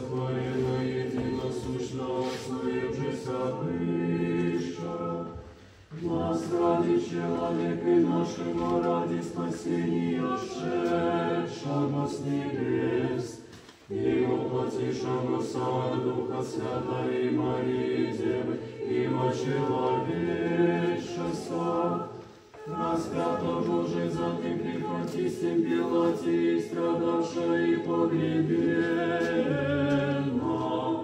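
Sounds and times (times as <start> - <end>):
choir singing a cappella: 0.0 - 31.0.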